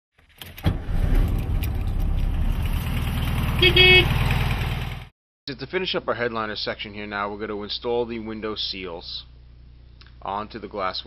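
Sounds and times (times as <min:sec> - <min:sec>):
car engine starting and idling: 0:00.2 - 0:05.1.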